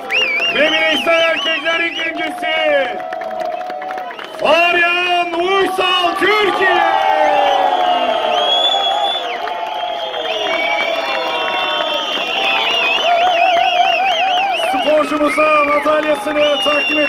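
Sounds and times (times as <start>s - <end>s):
crowd cheering and whooping: 0.0s - 17.0s.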